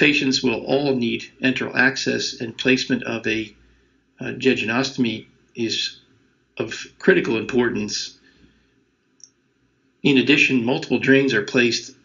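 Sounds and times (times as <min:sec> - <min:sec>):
man's voice: 0:00.0 - 0:03.5, 0:04.2 - 0:05.9, 0:06.6 - 0:08.1, 0:10.1 - 0:11.9.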